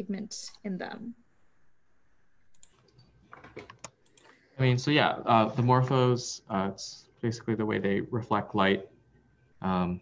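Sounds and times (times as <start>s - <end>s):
man speaking: 4.6s - 9.0s, 9.6s - 10.0s.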